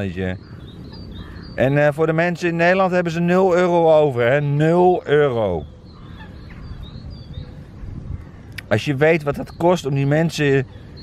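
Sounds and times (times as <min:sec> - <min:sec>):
faint bird calls: 0:00.0 - 0:11.0.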